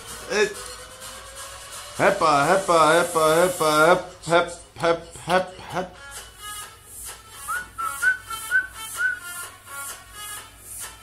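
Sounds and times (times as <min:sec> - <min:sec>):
dance music with steady beat: 0:00.0 - 0:11.0
whistled tune: 0:07.4 - 0:09.5.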